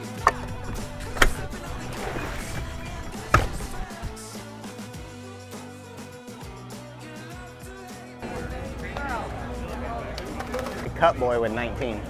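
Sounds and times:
man's voice: 0.0s - 5.2s, 7.1s - 12.0s.

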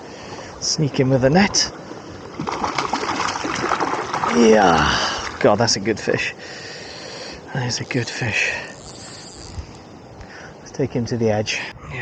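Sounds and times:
fish splashing in water: 2.2s - 5.5s.

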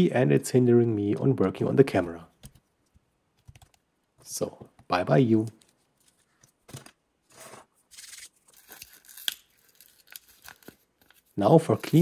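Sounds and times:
paper sachet crinkling and tearing: 7.9s - 12.0s.

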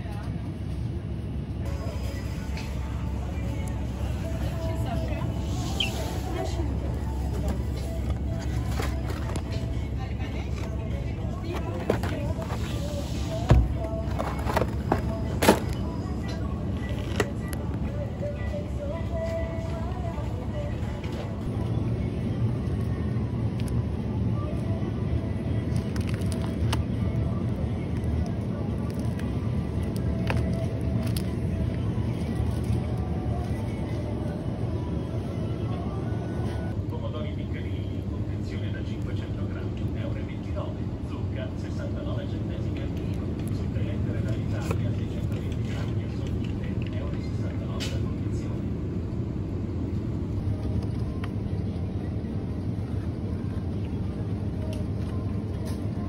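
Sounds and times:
indistinct shoppers' voices: 0.0s - 56.0s
refrigerated cases humming: 0.0s - 56.0s.

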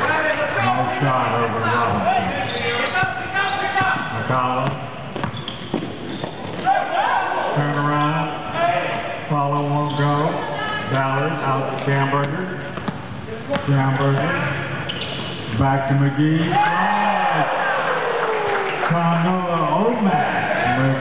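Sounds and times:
basketball bouncing on wood floor: 3.8s - 6.6s.

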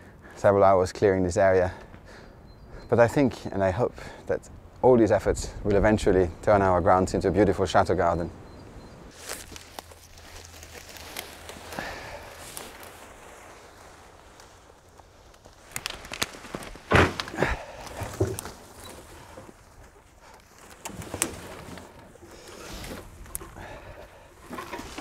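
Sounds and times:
branches rustling and crackling: 0.0s - 25.0s.

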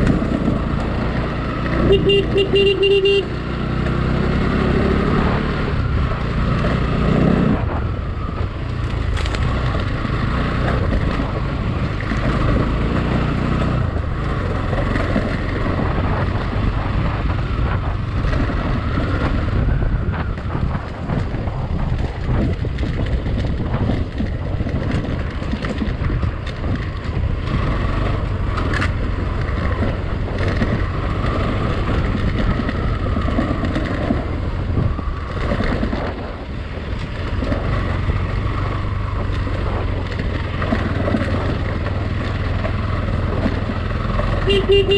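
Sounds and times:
wind buffeting microphone: 0.0s - 2.2s, 2.9s - 44.9s
motorcycle engine running: 0.0s - 44.9s.

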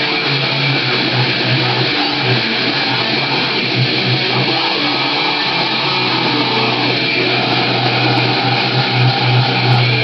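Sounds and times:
distorted electric guitar metal riff: 0.0s - 10.0s.

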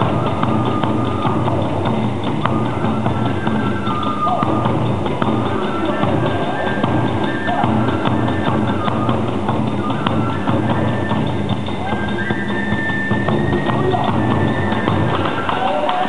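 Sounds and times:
bamboo flute high notes: 0.0s - 16.0s
hand cymbal clashes: 0.0s - 16.0s
rapid drum beats: 0.0s - 16.0s.

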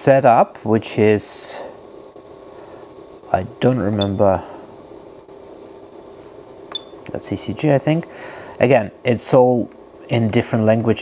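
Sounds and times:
cooling fan humming: 0.0s - 11.0s
button click-chirp: 4.0s - 4.2s.

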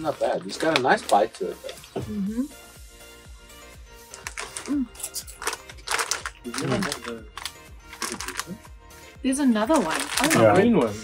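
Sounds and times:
chip bag crinkling: 0.0s - 1.8s, 4.1s - 8.6s, 9.7s - 11.0s
faint background music: 0.0s - 11.0s.

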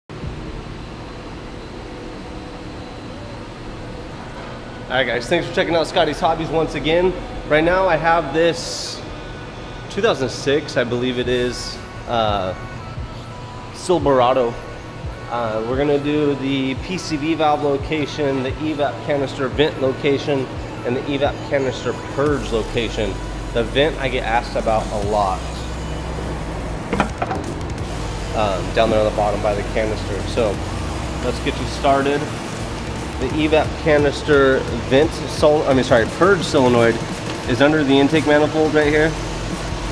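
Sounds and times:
low hum: 0.1s - 39.9s
pickup engine idling: 17.9s - 39.9s.

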